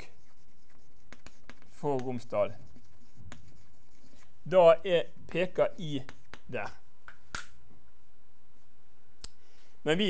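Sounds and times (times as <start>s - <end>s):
chalk tapping on blackboard: 0.0s - 4.4s, 5.4s - 7.6s.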